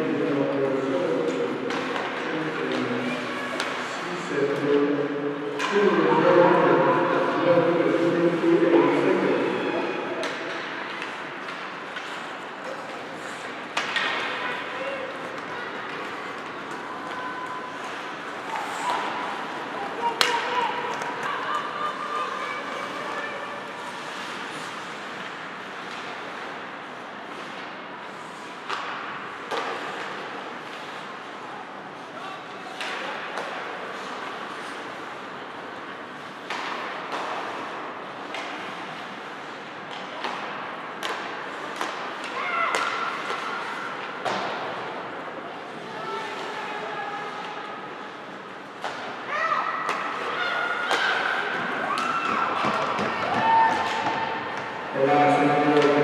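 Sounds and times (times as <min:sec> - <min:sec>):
hockey sticks and puck knocking: 0:10.2 - 0:17.2, 0:19.9 - 0:21.4, 0:36.3 - 0:39.2, 0:39.8 - 0:45.0, 0:49.8 - 0:54.8.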